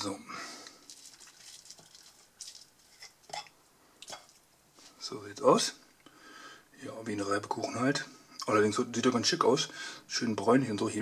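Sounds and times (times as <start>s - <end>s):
soft crunching of fried potato: 0.6s - 4.4s.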